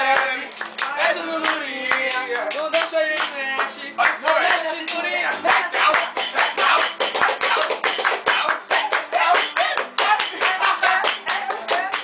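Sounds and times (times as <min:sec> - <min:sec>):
group singing: 0:00.0 - 0:12.0
people clapping a rhythm: 0:00.0 - 0:12.0.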